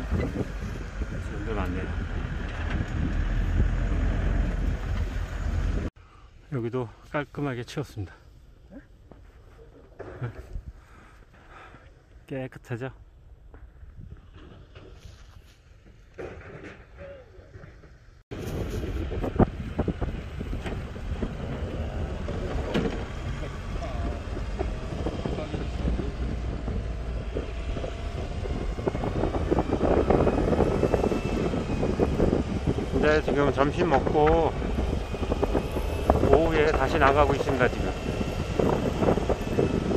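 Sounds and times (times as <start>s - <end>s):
wind on microphone: 0.0s - 5.9s, 18.3s - 39.9s
golf cart ride noise: 18.4s - 39.9s.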